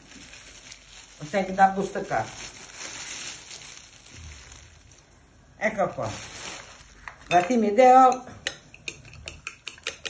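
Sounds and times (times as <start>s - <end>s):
plastic bag rustling: 0.0s - 7.4s.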